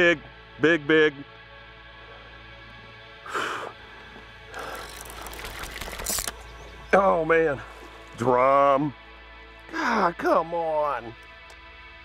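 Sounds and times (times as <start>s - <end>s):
fishing reel winding: 4.5s - 6.4s.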